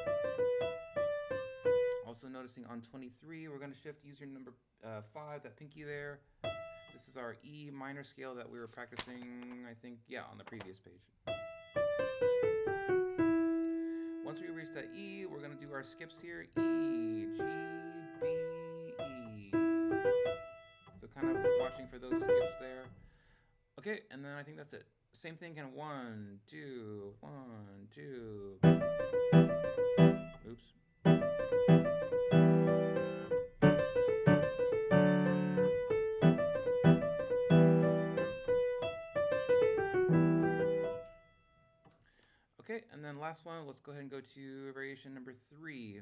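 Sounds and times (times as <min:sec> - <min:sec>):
piano notes: 0:00.0 - 0:02.0, 0:06.4 - 0:07.0, 0:11.3 - 0:22.8, 0:28.6 - 0:41.5.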